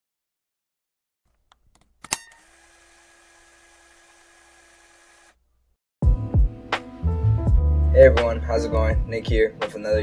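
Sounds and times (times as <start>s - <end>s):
sharp click: 1.4s - 2.4s.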